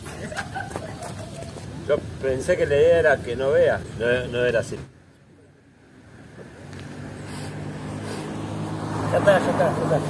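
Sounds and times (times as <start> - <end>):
motor vehicle engine hum: 0.0 - 10.0.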